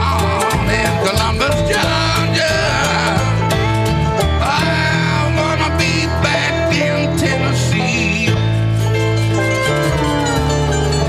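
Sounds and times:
continuous bass line: 0:00.0 - 0:11.0
country-blues band guitars: 0:00.0 - 0:11.0.

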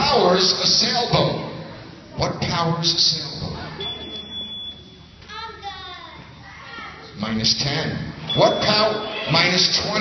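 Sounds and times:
children chattering: 0:05.2 - 0:07.2, 0:08.4 - 0:10.0.

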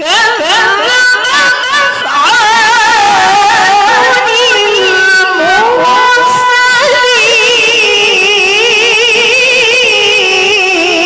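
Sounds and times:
woman chanting into a microphone: 0:00.0 - 0:11.0.

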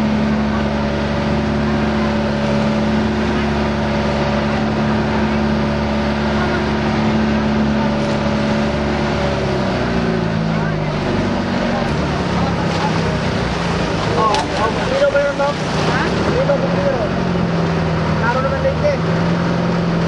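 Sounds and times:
motorboat engine running: 0:00.0 - 0:20.0
rush of wind and water: 0:00.0 - 0:20.0.

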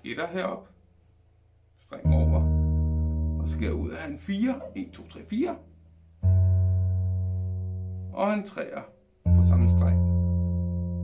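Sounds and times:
bass guitar plucked note: 0:02.0 - 0:08.3, 0:09.2 - 0:11.0.

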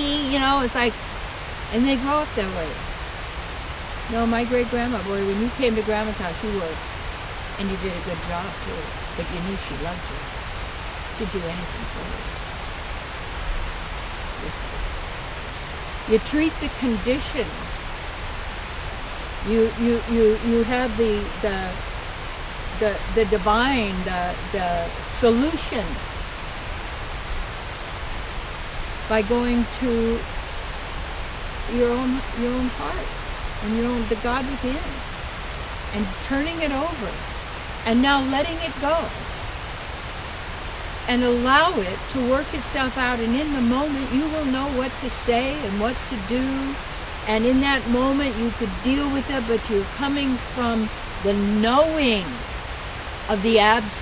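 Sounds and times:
outdoor rushing hiss: 0:00.0 - 0:36.0, 0:37.0 - 0:37.9, 0:38.8 - 0:41.6, 0:50.8 - 0:53.8.

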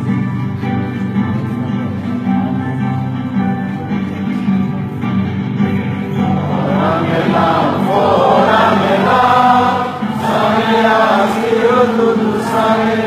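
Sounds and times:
musical accompaniment: 0:00.0 - 0:13.0
voices singing together: 0:06.2 - 0:13.0.

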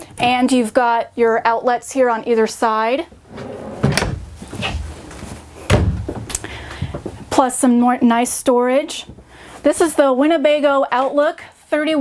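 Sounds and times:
wooden cabinet door knocks: 0:05.7 - 0:06.2.

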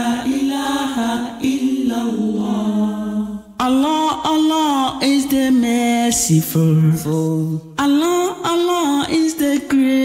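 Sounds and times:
man chanting: 0:03.6 - 0:10.0.

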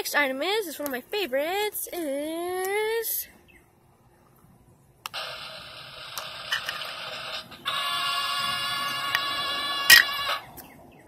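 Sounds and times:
high pitched buzz: 0:05.1 - 0:10.6.

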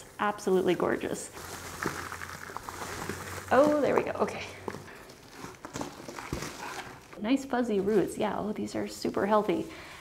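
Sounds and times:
potting soil crumbling and rustling: 0:00.0 - 0:09.6.

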